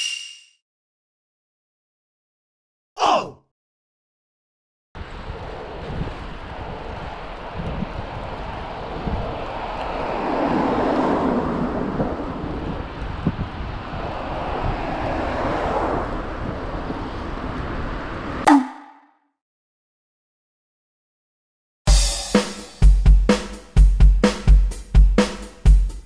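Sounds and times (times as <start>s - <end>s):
wind rushing over microphone: 5.0s - 18.4s
low road rumble: 5.0s - 19.0s.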